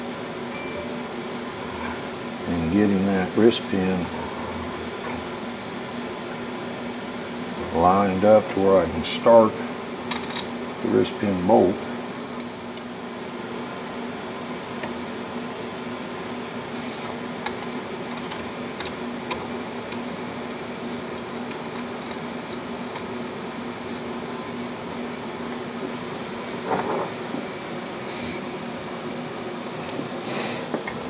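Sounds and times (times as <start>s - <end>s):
fan humming: 0.0s - 31.0s.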